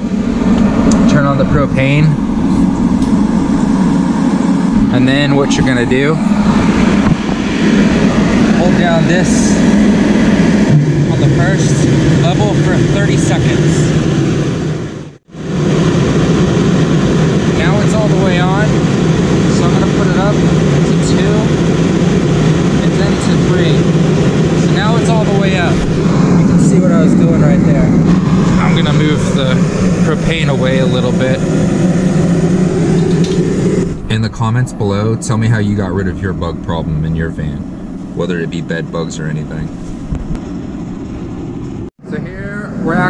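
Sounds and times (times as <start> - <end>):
heater fan whirring: 0.0 - 43.0
low even hum: 0.0 - 43.0.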